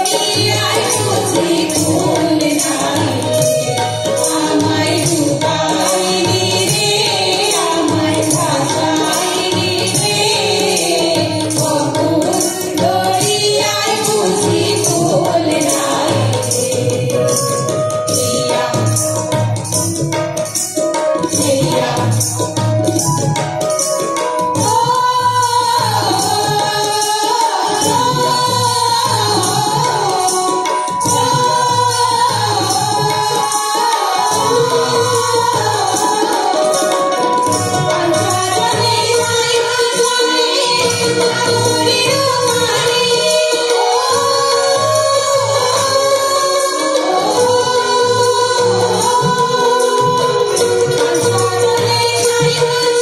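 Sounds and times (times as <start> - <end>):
women singing in unison: 0.0 - 19.7, 21.2 - 23.1, 24.5 - 53.0
hand drum beat: 0.0 - 45.0
instrumental accompaniment: 0.0 - 53.0
jingling percussion: 0.0 - 53.0.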